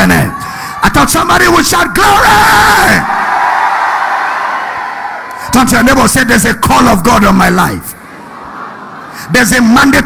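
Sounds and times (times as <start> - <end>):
crowd shouting and cheering: 0.0 - 6.1, 8.0 - 9.2.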